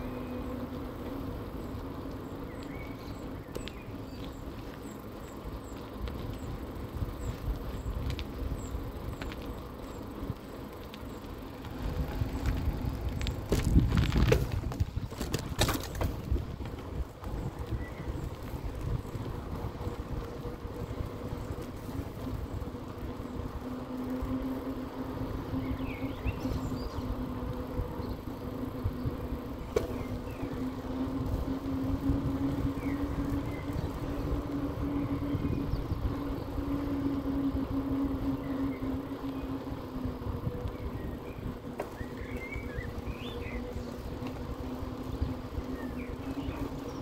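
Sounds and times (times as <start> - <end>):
bird chirps: 2.2 - 5.8, 40.8 - 44.2
tyre rumble on pavement: 2.6 - 23.3
wind on microphone: 11.8 - 23.7, 25.2 - 47.0
electric motor whine: 15.9 - 47.0.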